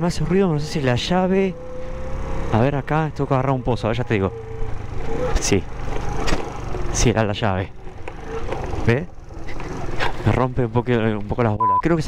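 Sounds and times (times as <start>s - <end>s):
scooter engine running: 0.2s - 11.1s.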